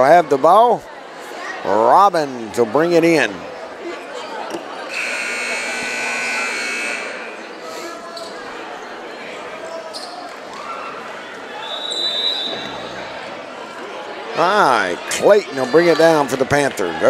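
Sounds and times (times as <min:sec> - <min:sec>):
crowd chattering: 0:00.0 - 0:17.0
scoreboard horn: 0:04.9 - 0:07.4
short high whistle: 0:11.6 - 0:12.7.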